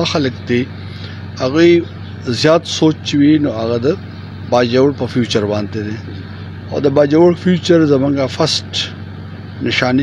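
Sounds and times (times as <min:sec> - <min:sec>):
man speaking: 0:00.0 - 0:00.8, 0:01.4 - 0:09.0, 0:09.6 - 0:10.0
steady low hum: 0:00.0 - 0:10.0.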